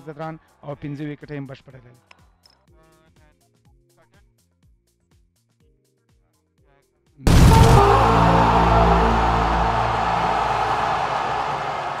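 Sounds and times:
logo music chord: 7.3s - 12.0s.

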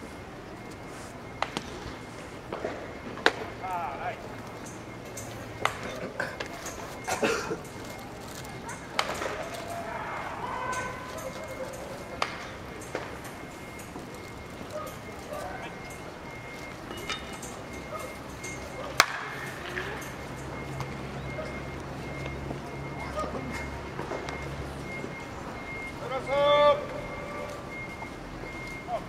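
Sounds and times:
faint chatter: 0.0s - 29.0s
bat hitting ball: 19.0s - 19.9s.

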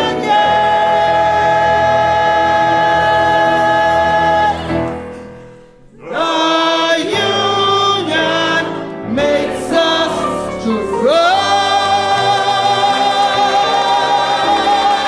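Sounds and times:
choir singing: 0.0s - 5.2s, 5.8s - 15.0s.

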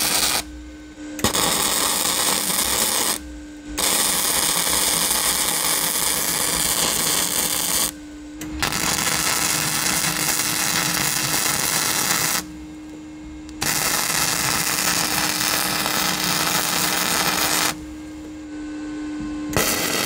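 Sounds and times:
welding arc crackling: 0.0s - 0.5s, 1.2s - 3.2s, 3.8s - 12.5s, 13.6s - 17.8s, 19.6s - 20.0s.

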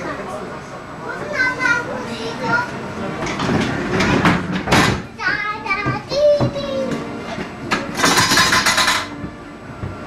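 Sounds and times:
children calling and chattering: 0.0s - 3.4s, 5.0s - 7.6s.

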